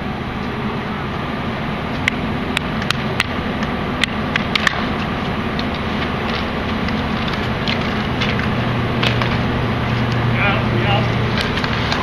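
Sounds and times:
steady low hum: 0.0 - 12.0
hockey sticks clacking on concrete: 2.0 - 9.4, 10.9 - 12.0.

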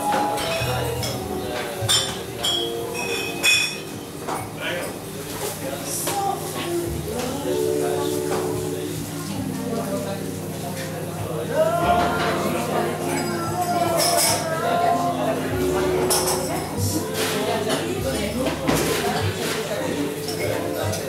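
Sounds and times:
tableware clinking: 0.0 - 5.5, 12.0 - 21.0
bar room chatter: 0.0 - 21.0.

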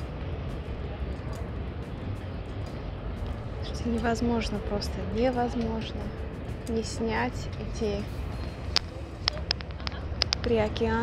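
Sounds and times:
low rumble: 0.0 - 11.0
sharp clicks: 8.8 - 10.6.

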